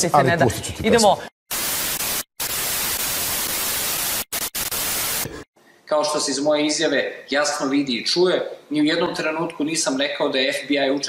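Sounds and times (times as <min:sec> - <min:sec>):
television static hiss: 0:01.5 - 0:05.4.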